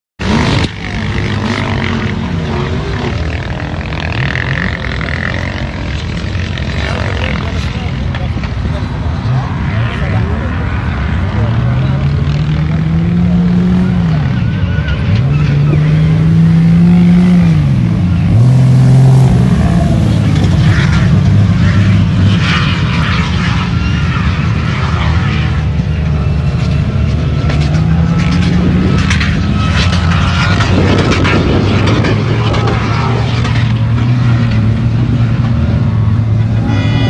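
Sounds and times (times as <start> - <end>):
engines revving hard: 0.2 - 37.0.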